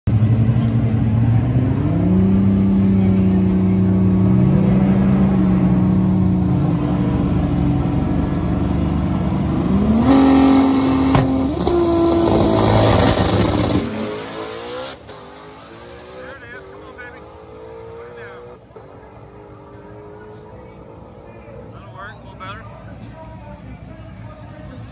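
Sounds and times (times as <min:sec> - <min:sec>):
drag car engine revving: 0:00.1 - 0:21.4.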